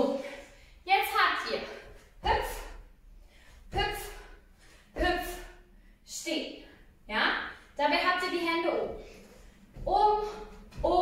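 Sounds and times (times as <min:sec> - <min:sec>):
woman calling out rhythm syllables: 0:00.9 - 0:02.8, 0:03.7 - 0:04.4, 0:05.0 - 0:08.9, 0:09.8 - 0:11.0.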